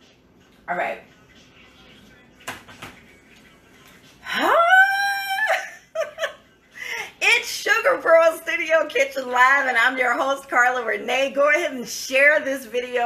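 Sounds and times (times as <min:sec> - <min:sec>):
woman's sung whoop: 0:04.3 - 0:05.7
woman laughing: 0:04.3 - 0:07.2.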